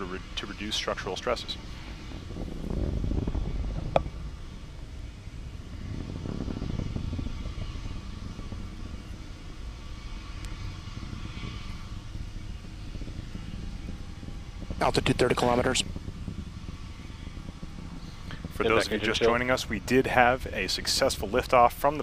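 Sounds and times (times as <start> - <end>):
distant rocket engine rumble: 0.0 - 22.0.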